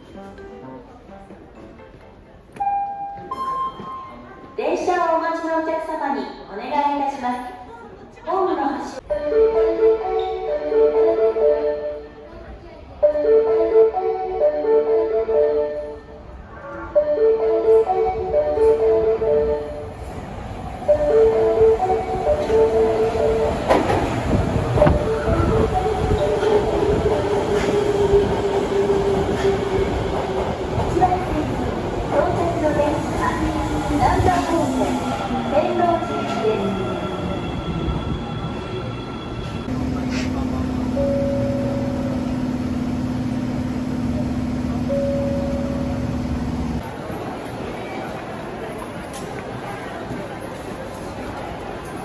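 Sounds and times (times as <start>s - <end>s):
subway train rumble: 0.0s - 52.0s
short higher tone: 39.7s - 42.7s.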